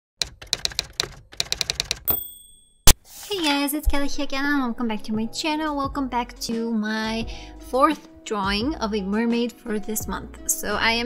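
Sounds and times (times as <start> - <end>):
typewriter keys clicking: 0.2 - 2.2.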